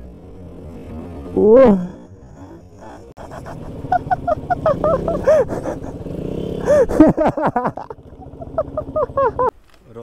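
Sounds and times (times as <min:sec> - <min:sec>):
person laughing: 0:02.4 - 0:09.5.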